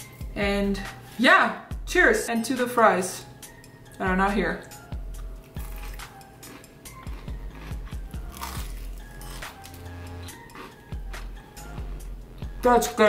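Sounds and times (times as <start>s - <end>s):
background music: 0.0s - 13.0s
crunchy chewing: 5.2s - 12.0s.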